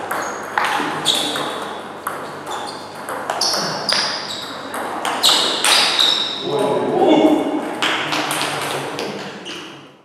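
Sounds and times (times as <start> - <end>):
table tennis ball pinging: 0.0 - 6.3
voice: 6.4 - 9.6.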